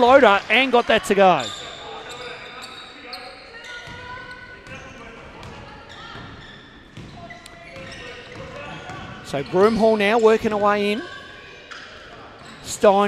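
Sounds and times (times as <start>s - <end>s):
basketball bouncing on court: 3.7s - 9.8s.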